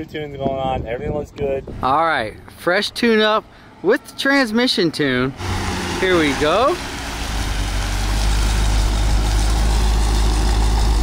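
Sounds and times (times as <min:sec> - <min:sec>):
car engine idling low rumble: 0:05.3 - 0:11.0.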